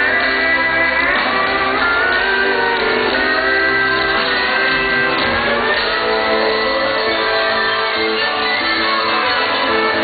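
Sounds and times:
live country band music: 0.0s - 10.0s.

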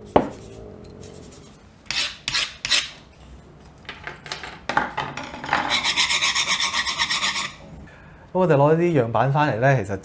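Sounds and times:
metal tool scraping laminate floor: 5.3s - 7.6s.

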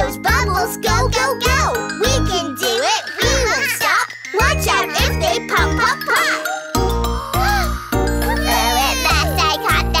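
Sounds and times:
child singing: 0.0s - 6.6s, 9.0s - 10.0s
bright backing music: 0.0s - 10.0s.

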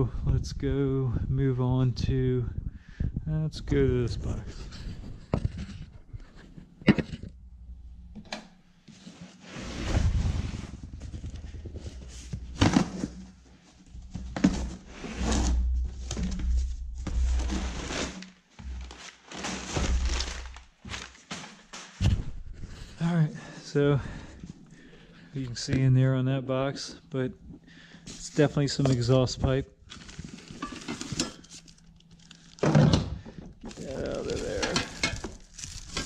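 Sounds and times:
cardboard ripping and rustling: 14.3s - 22.2s, 33.6s - 36.0s.

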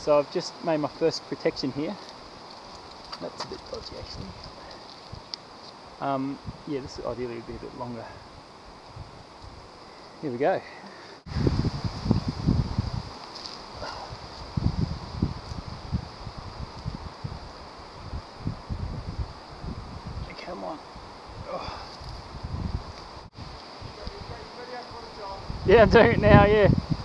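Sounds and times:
wind on microphone: 6.3s - 9.8s, 11.2s - 27.0s
scuffs against tree trunk: 13.2s - 14.5s.

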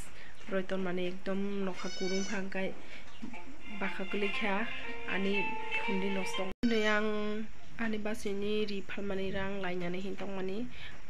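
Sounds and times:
woman talking in sing-song voice: 0.5s - 2.7s, 3.7s - 10.7s.

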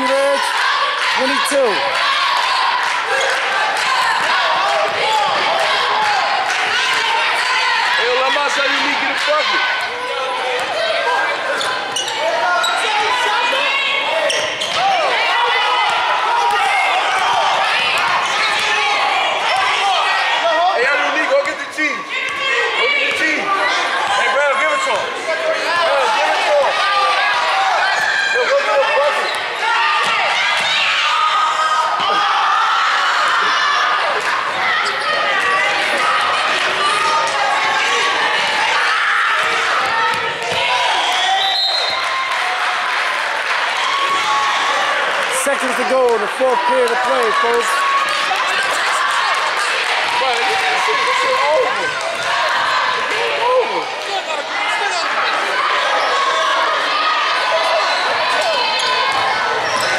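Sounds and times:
voices of players and spectators: 0.0s - 59.9s.

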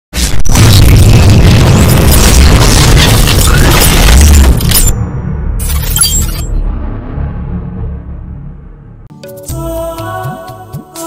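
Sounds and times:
crackling hits: 0.1s - 9.1s
deep boom and rumble: 0.2s - 9.1s.

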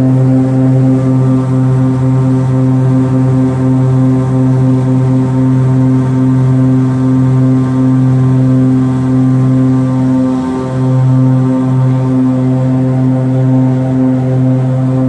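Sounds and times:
propeller plane engines droning: 0.0s - 15.0s.

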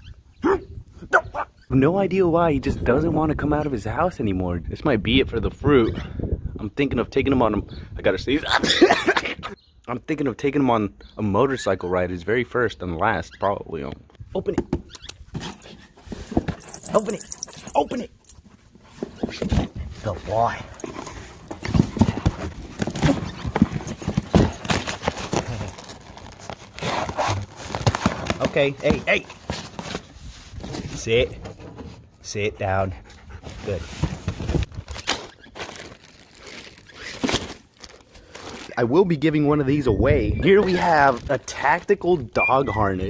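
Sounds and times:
dog pawing at cardboard box: 18.5s - 25.9s, 26.6s - 30.9s
plastic packaging crinkling: 20.0s - 30.6s, 34.4s - 38.8s.

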